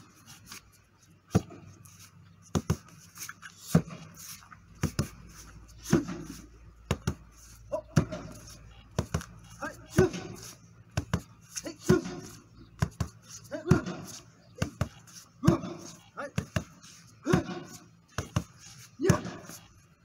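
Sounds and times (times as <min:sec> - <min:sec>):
kicks slapping into kick pad: 0:17.3 - 0:19.4.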